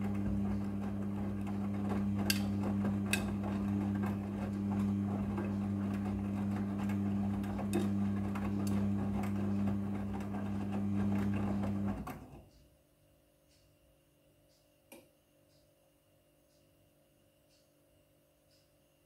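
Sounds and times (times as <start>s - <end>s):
washing machine drum humming: 0.0s - 12.6s.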